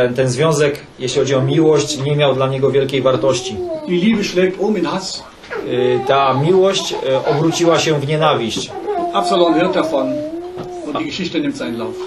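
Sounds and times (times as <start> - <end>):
person speaking: 0.9 - 12.0.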